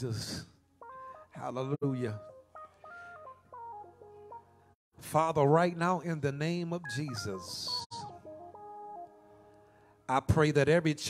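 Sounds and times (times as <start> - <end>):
man's voice: 0.0 - 0.5, 1.4 - 2.2, 5.0 - 8.1, 10.1 - 11.0
organ-style keyboard chords: 0.0 - 11.0.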